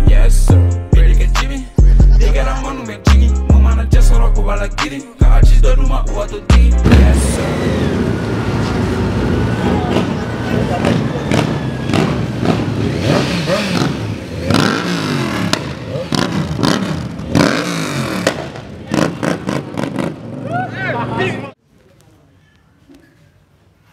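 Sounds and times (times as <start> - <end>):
motorcycle engines revving: 6.8 - 21.6
people shouting and talking: 7.0 - 12.5, 20.3 - 23.9.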